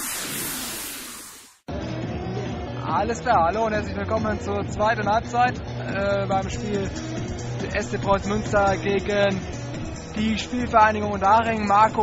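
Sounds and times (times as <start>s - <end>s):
burst of hiss-like noise: 0.0s - 1.7s.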